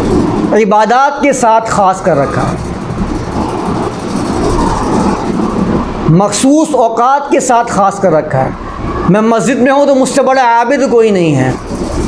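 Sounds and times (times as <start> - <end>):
rumbling background noise: 0.0 - 12.0.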